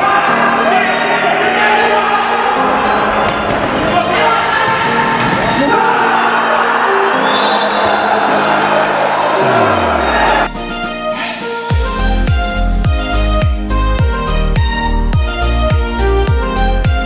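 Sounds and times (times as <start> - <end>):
background music: 0.0 - 17.0
ball kicks and bounces on wooden court: 3.1 - 5.8.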